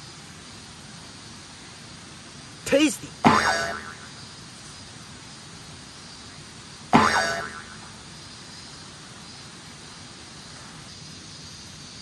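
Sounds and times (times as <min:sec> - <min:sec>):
steady low hiss: 0:00.0 - 0:12.0
cartoon boing sound effect: 0:03.2 - 0:04.0, 0:07.0 - 0:07.8.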